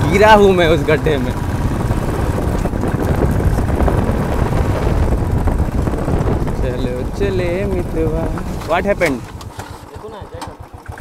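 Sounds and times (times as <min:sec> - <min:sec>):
wind rumble on microphone: 0:00.0 - 0:09.6
motorcycle engine running: 0:00.0 - 0:11.0.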